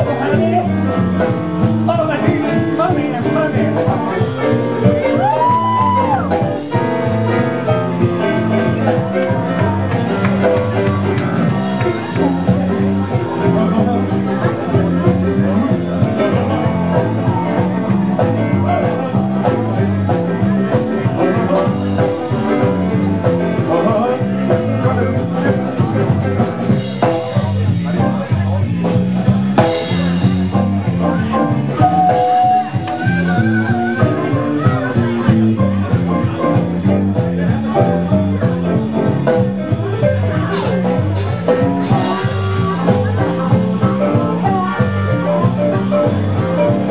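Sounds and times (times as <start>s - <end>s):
blues-rock band playing: 0.0s - 46.9s
person singing: 8.3s - 26.2s, 31.2s - 35.3s, 39.8s - 46.9s.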